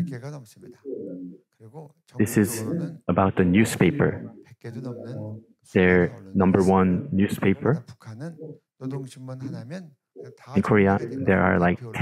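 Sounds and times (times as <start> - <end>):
man speaking: 0.0 - 0.8, 1.6 - 12.0.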